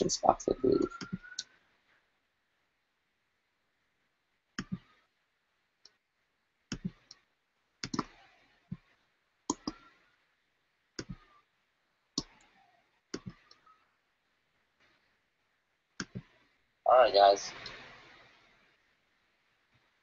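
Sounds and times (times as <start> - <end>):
sharp clicks: 7.8 - 8.2, 9.5 - 9.9.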